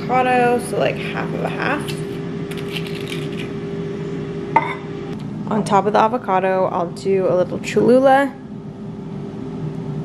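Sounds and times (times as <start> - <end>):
air fryer humming: 0.0 - 10.0.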